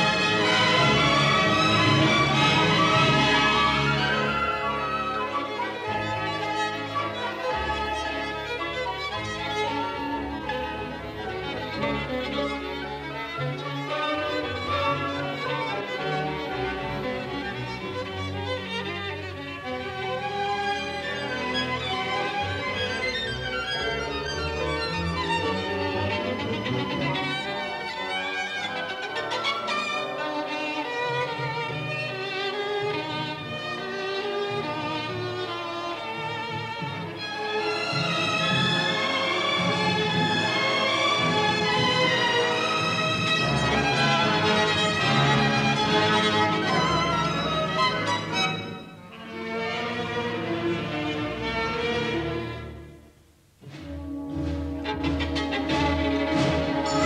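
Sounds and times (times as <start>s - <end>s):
solo violin: 0.0s - 53.1s, 53.7s - 57.0s
orchestral strings: 0.0s - 57.0s.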